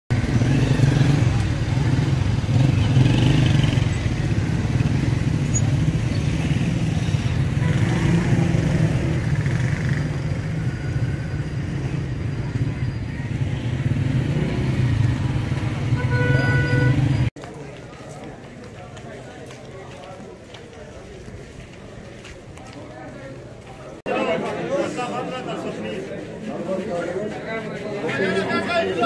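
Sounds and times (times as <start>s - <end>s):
motorcycle engines running: 0.1s - 19.4s
chatter of men: 17.4s - 29.0s.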